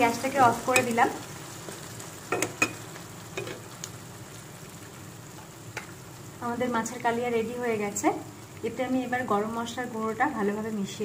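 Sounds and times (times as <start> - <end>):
curry sizzling in a pan: 0.0 - 11.0.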